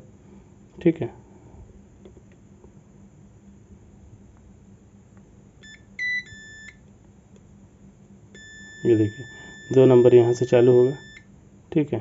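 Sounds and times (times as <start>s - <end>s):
multimeter continuity beeping: 5.6s - 6.8s, 8.4s - 11.3s.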